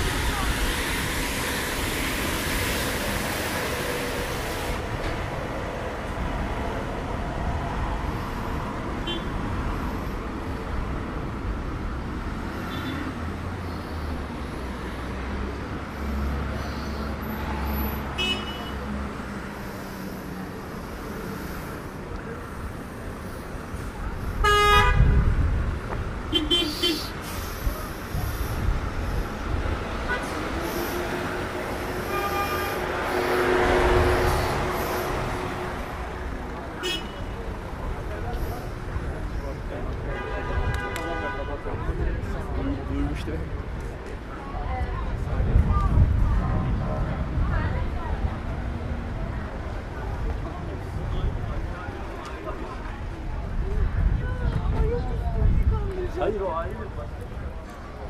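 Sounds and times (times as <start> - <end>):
cars passing: 0.0 - 58.0
car horn blowing: 24.4 - 25.0, 26.3 - 27.1, 32.1 - 32.8, 36.8 - 37.2.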